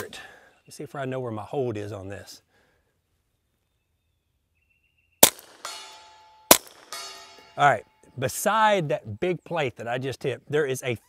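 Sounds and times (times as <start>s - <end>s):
suppressed pistol shots: 5.2s - 7.4s
steel plate ringing: 5.6s - 8.1s.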